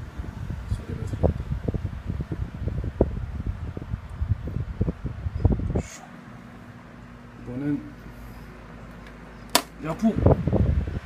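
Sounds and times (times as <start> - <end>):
fan airflow buffeting microphone: 0.0 - 11.0.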